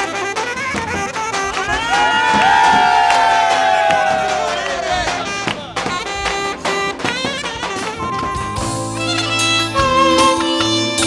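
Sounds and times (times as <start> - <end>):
dance music: 1.6 - 11.0
young men shouting together: 1.7 - 5.3.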